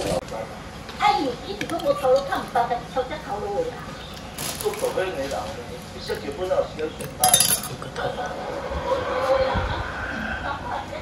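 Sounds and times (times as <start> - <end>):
porcelain bowl clinking: 7.0 - 7.9.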